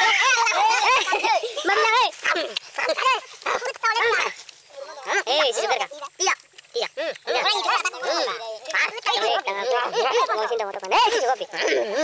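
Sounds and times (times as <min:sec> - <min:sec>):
people chattering and exclaiming: 0:00.0 - 0:12.0.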